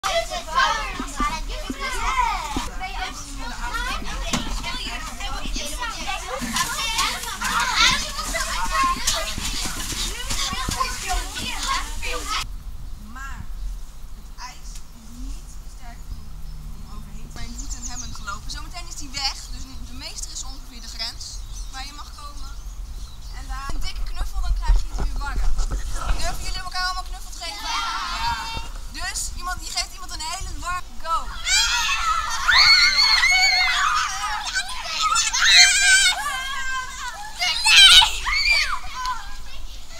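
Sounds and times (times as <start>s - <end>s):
young children chattering: 0.0s - 12.5s, 14.2s - 39.9s
child high-pitched shout: 31.3s - 39.9s.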